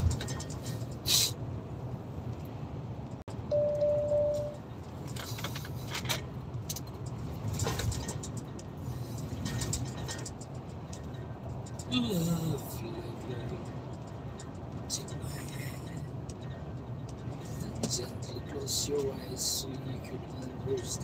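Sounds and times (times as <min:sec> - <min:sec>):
lorry engine and tyre rumble: 0:00.0 - 0:21.0
steady beep: 0:03.5 - 0:04.6.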